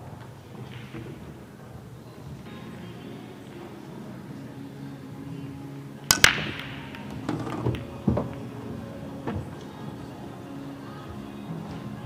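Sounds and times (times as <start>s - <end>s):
pool balls clattering: 0.0s - 12.0s
pool break shot cracks: 6.1s - 9.8s.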